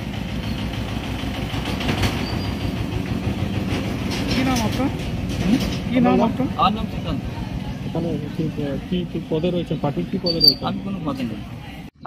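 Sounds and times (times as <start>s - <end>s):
passing vehicle rumble: 0.0s - 12.0s.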